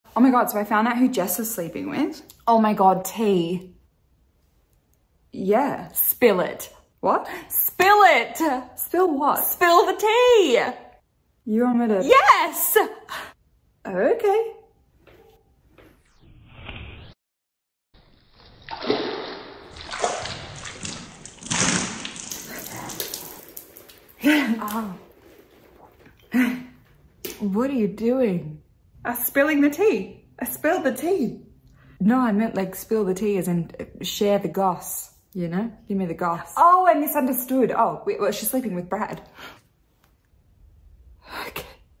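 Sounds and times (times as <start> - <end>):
tea splashing from a glass: 18.4 - 26.4.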